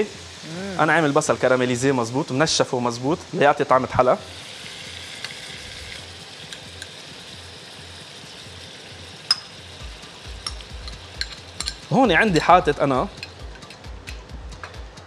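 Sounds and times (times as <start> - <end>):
livers sizzling in frying pan: 0.0 - 14.8.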